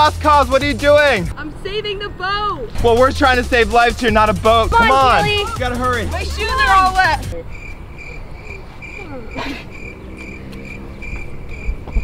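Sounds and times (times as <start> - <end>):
cricket chirping: 7.3 - 12.0.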